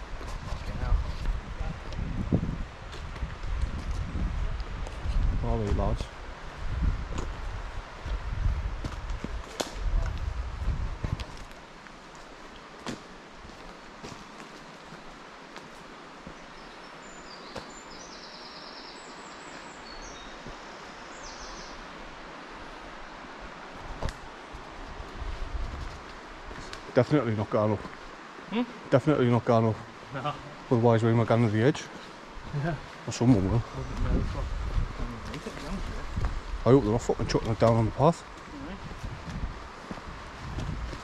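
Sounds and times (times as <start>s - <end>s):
wind buffeting microphone: 0.0s - 11.5s, 23.7s - 26.6s, 32.3s - 41.0s
rustling leaves: 0.0s - 41.0s
flowing river water: 11.6s - 41.0s.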